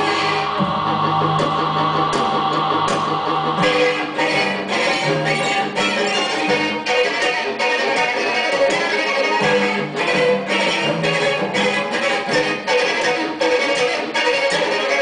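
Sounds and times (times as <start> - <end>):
piano notes pulsing: 0.0 - 7.0
sustained string tones: 0.0 - 15.0.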